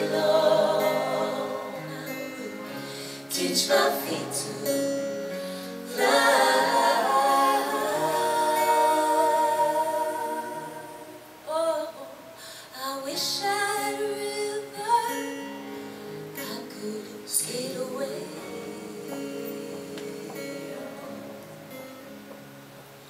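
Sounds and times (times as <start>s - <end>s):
soft instrumental accompaniment: 0.0s - 11.3s
woman singing folk ballad: 0.0s - 21.9s.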